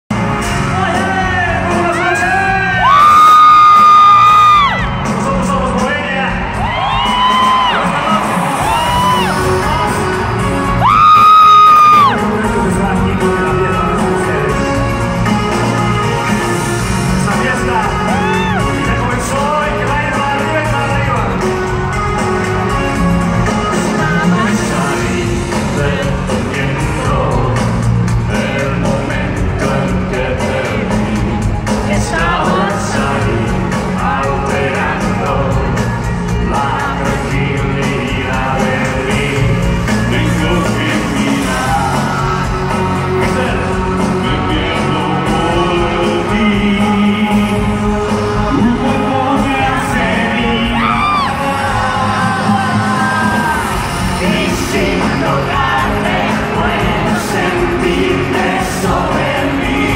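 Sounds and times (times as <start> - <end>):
live pop concert music: 0.1 - 59.9
man singing lead vocal: 0.1 - 59.9
crowd cheering: 1.7 - 12.4, 17.5 - 19.1, 50.2 - 58.3
high voice whooping: 50.8 - 51.4.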